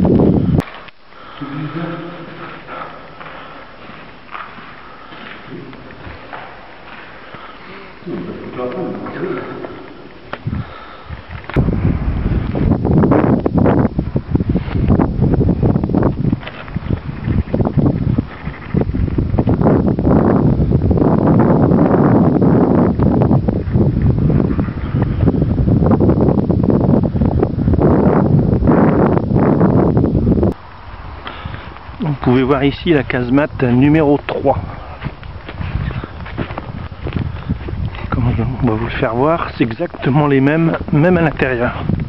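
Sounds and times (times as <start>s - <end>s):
wind buffeting microphone: 0.0s - 0.7s, 8.0s - 42.0s.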